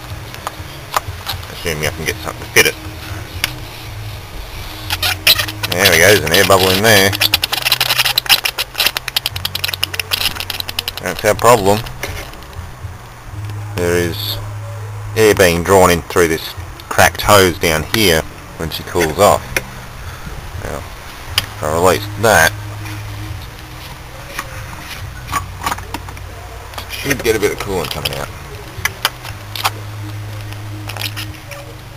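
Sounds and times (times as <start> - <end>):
low steady hum: 0.0 - 31.9.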